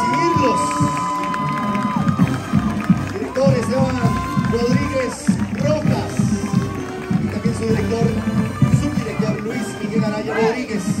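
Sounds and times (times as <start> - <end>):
crowd voices and shouts: 0.0 - 11.0
marching band playing: 0.0 - 11.0.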